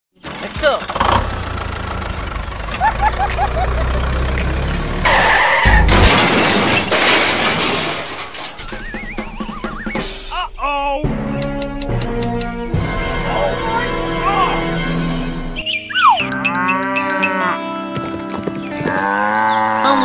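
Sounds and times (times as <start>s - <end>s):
low engine rumble: 0.3s - 5.1s
cartoon crash: 5.0s - 10.5s
background music: 8.7s - 20.0s.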